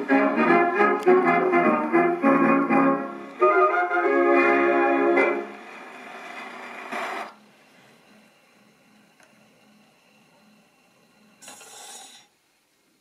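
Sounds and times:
record needle surface hiss: 0:00.0 - 0:13.0
scratchy record crackle: 0:04.9 - 0:07.9.

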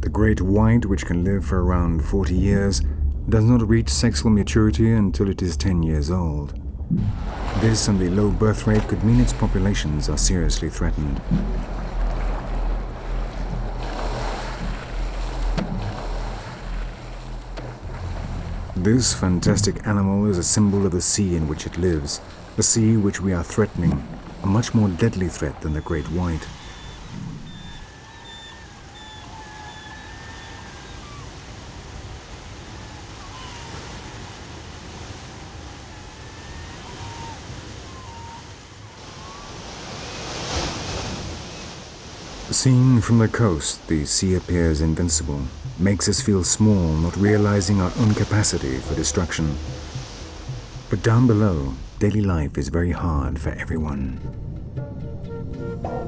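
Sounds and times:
steady low rumble: 0:00.0 - 0:27.5
wave crashing: 0:00.9 - 0:27.9, 0:36.4 - 0:52.8
surf breaking on rocky shore: 0:01.5 - 0:27.1, 0:30.6 - 0:54.2
water splashing against boat hull: 0:05.5 - 0:27.9, 0:39.0 - 0:54.4.

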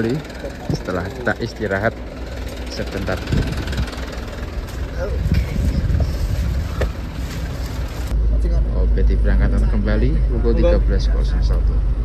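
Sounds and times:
minibus engine rumbling: 0:00.0 - 0:12.0
outdoor noise: 0:00.0 - 0:12.0.

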